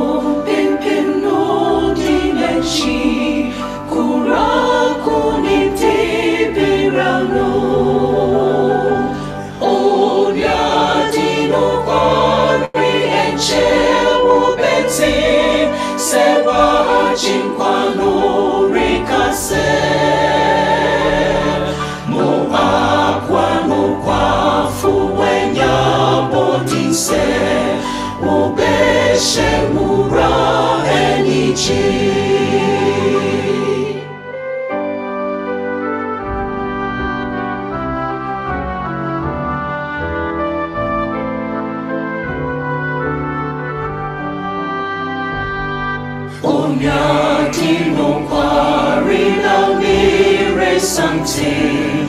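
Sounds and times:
choir singing a hymn: 0:00.0 - 0:34.5, 0:45.6 - 0:52.0.

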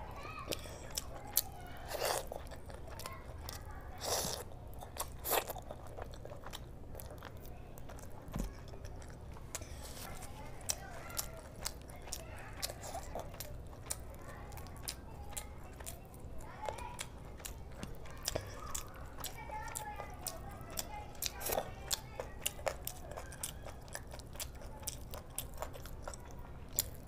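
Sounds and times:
wet chewing: 0:00.4 - 0:27.0
loud crunch of food: 0:00.5 - 0:08.1.

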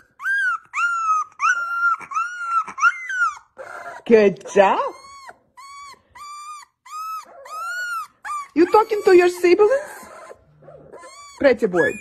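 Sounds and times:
puppy whining: 0:00.0 - 0:12.0.

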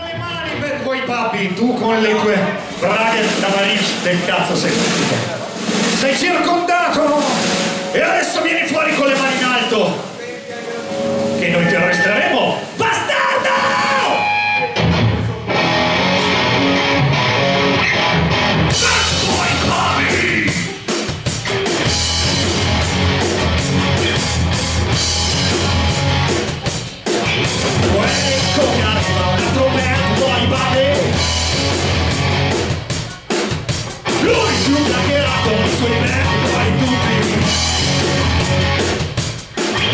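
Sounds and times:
live rock band playing: 0:00.0 - 0:39.9
held electric guitar notes: 0:14.2 - 0:19.8.

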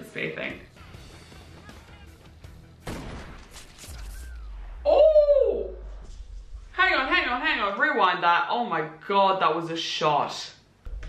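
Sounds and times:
woman's drawn-out ooh: 0:04.9 - 0:05.9.

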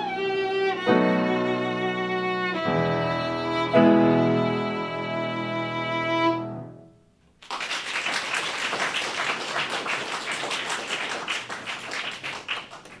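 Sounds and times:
applause: 0:07.4 - 0:13.0.

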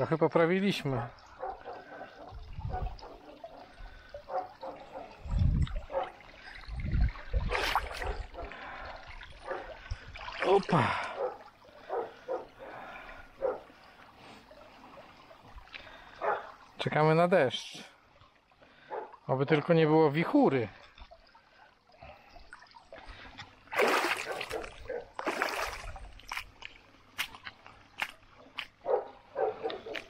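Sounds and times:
water sloshing and splashing: 0:00.0 - 0:30.0.

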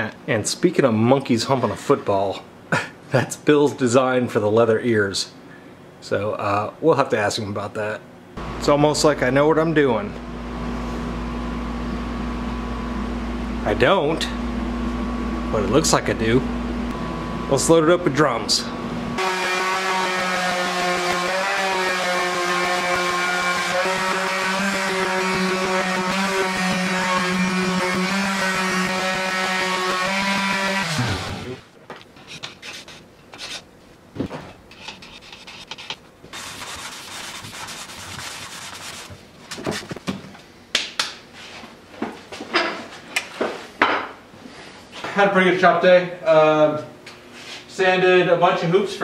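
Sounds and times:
shop machine motor humming: 0:08.4 - 0:31.7
hands rubbing a hoop: 0:34.7 - 0:40.0.

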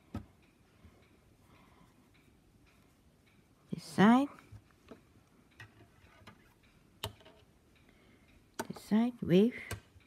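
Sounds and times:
knitting needle ticks: 0:00.0 - 0:10.0.

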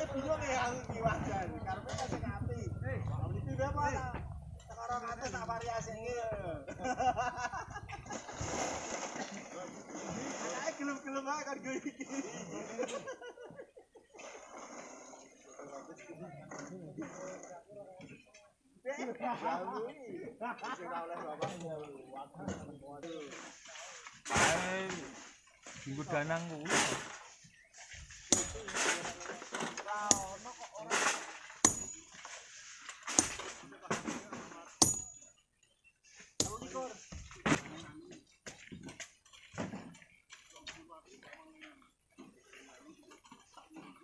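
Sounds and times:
men talking and calling: 0:00.0 - 0:08.1, 0:15.3 - 0:32.6, 0:36.2 - 0:44.0
hammer striking rock: 0:30.1 - 0:30.4, 0:31.6 - 0:32.0, 0:34.8 - 0:35.2, 0:36.4 - 0:36.7.

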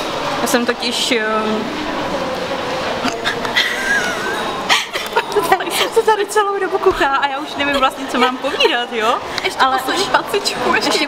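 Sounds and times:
woman squealing and giggling: 0:03.1 - 0:05.5.

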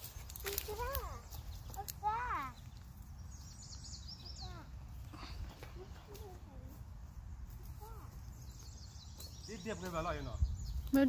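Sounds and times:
high thin bird chirps: 0:00.0 - 0:05.4.

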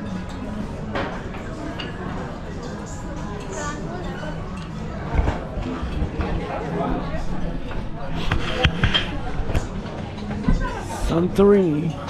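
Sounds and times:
babble of voices: 0:01.5 - 0:12.0.

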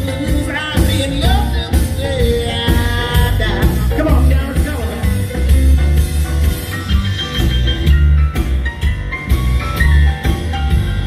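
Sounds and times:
live blues band playing: 0:00.0 - 0:11.0.

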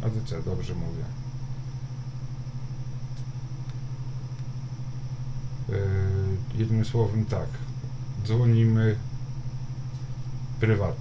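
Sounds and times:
low electrical hum: 0:00.0 - 0:11.0
man speaking: 0:05.7 - 0:09.1, 0:10.6 - 0:11.0.

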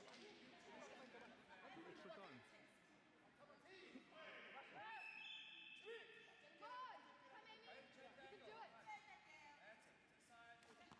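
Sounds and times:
chatter of many voices: 0:00.0 - 0:10.9.

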